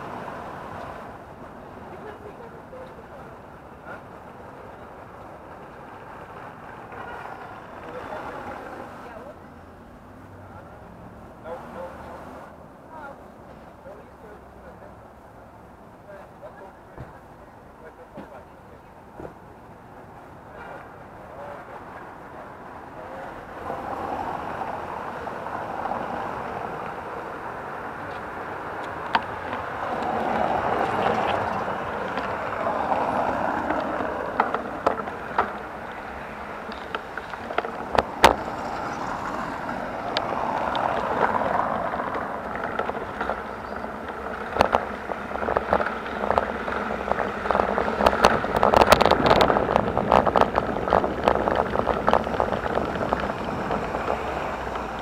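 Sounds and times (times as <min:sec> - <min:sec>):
tyres rumbling on cobblestones: 0:00.0 - 0:55.0
wind noise on microphone: 0:27.9 - 0:55.0
rattling clicks from bike: 0:42.0 - 0:55.0.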